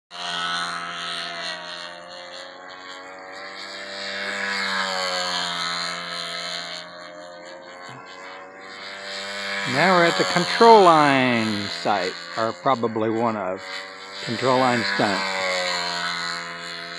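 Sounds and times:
model airplane engine running: 0.1 - 16.9.

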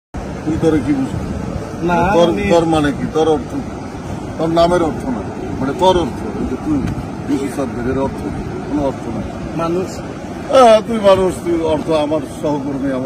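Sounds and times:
background rush of noise: 0.2 - 13.0
men talking: 0.2 - 13.0.

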